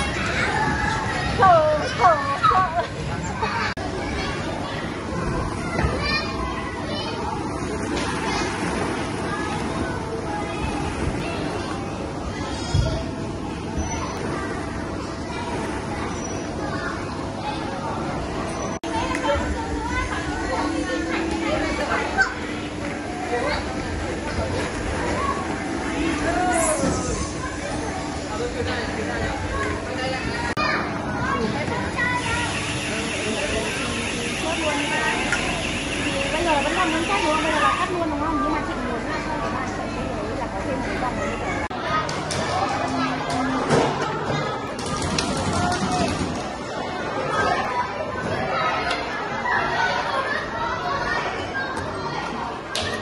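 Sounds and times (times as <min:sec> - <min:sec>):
adults chatter: 0:00.0 - 0:53.0
hubbub of children's voices: 0:00.0 - 0:53.0.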